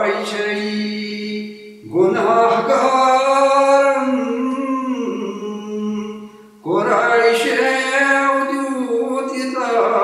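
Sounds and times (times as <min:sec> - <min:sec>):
man singing a long note: 0:00.0 - 0:10.0.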